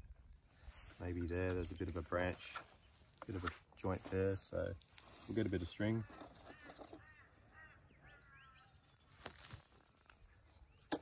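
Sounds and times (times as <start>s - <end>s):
faint bird calls: 5.6s - 11.0s.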